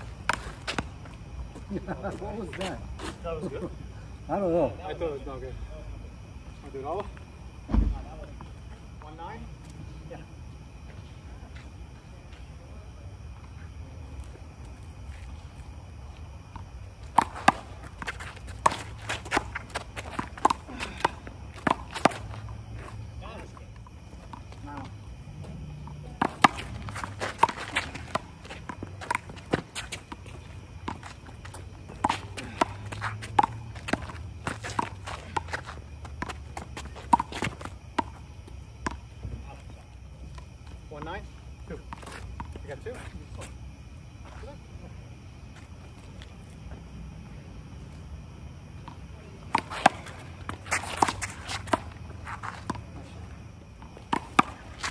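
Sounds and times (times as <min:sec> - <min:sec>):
sneakers scuffing on concrete: 0:26.2 - 0:39.0, 0:53.8 - 0:54.9.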